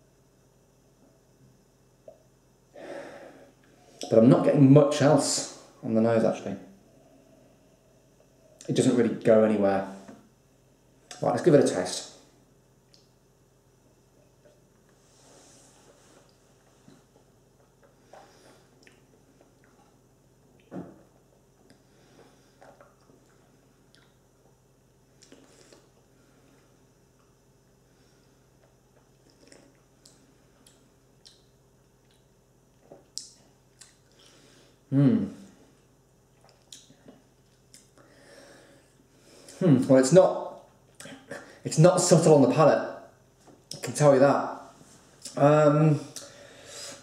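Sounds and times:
wet mouth smacks and clicks: 29.3 - 31.4.

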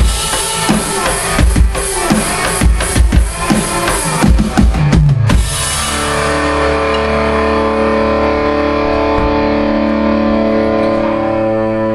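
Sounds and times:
distorted electric guitar chord: 0.0 - 11.9.

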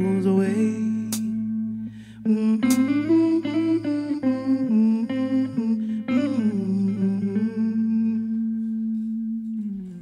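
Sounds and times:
woman humming a slow melody: 0.0 - 10.0.

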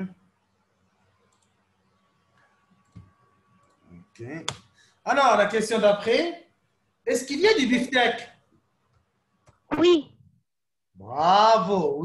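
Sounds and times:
faint computer clicks: 1.2 - 1.6.

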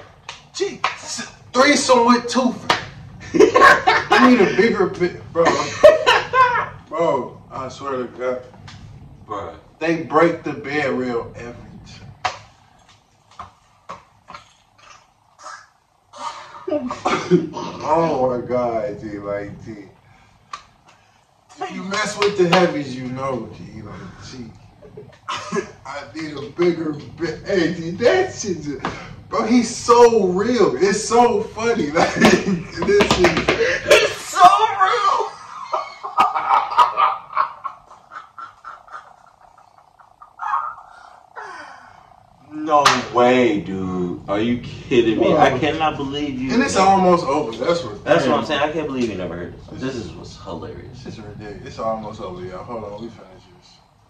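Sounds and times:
men laughing: 3.2 - 6.8, 23.9 - 25.9, 31.8 - 41.9.

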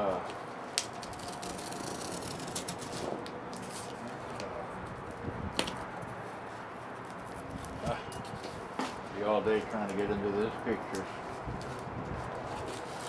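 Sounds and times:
wind noise on microphone: 4.8 - 6.1, 11.3 - 13.0
cardboard and plastic rustling: 11.0 - 13.0.

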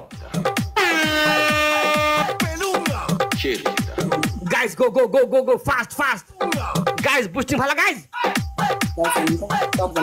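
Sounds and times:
background music with low thumps: 0.0 - 4.9, 5.7 - 10.0
air horn: 0.8 - 2.4.

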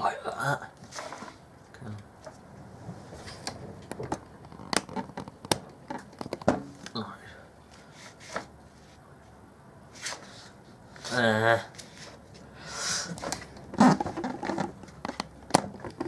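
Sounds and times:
paper rustling: 0.8 - 1.4, 7.8 - 9.0.

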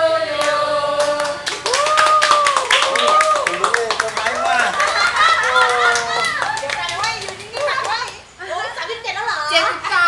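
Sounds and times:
hand claps: 0.4 - 8.2
people talking and calling out: 2.9 - 10.0.

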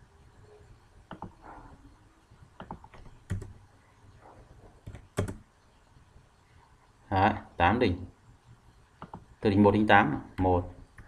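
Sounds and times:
computer keyboard keystrokes: 1.1 - 1.4, 2.6 - 3.6, 4.8 - 5.4, 9.0 - 9.3.

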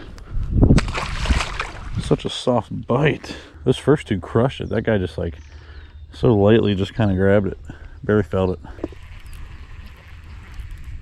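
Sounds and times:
wind rumbling on microphone: 0.0 - 2.3, 6.6 - 11.0.

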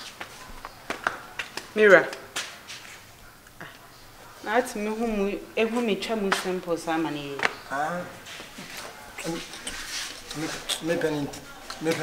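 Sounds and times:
conversation: 0.4 - 12.0.

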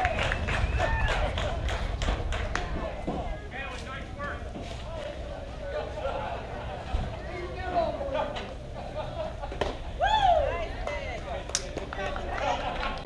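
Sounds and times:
people calling out: 9.9 - 11.4.

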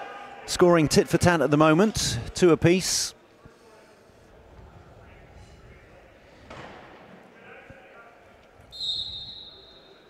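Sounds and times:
crowd chatter: 0.0 - 10.0
referee's whistle: 8.7 - 10.0.

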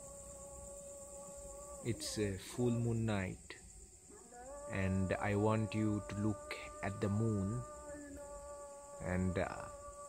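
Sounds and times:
crickets trilling: 0.0 - 10.0
man talking: 1.9 - 3.6, 4.7 - 7.7, 9.0 - 9.8.

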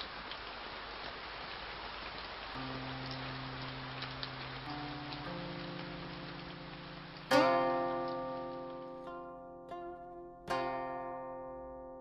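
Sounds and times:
steady rain: 0.0 - 12.0
drip ticks: 2.5 - 8.8
sustained low music chord: 2.6 - 12.0.

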